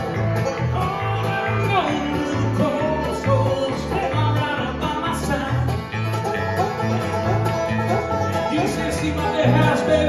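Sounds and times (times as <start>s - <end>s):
acoustic guitar: 0.0s - 10.0s
banjo: 0.0s - 10.0s
electric bass notes: 0.0s - 10.0s.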